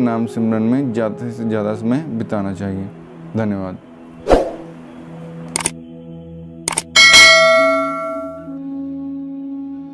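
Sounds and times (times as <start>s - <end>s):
mouse-like double clicks: 5.5s - 5.8s, 6.7s - 6.9s
bright bell ding: 7.0s - 8.5s
low sustained tone: 7.0s - 8.6s.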